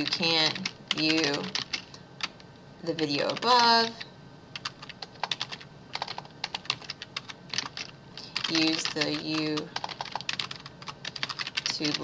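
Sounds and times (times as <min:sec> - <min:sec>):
typing on computer keyboard: 0:00.0 - 0:02.3, 0:04.6 - 0:12.0.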